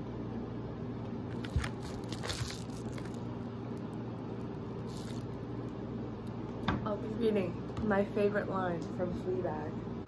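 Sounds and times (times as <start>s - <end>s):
steady low hum: 0.0s - 10.0s
crackles and rustles: 1.3s - 5.4s.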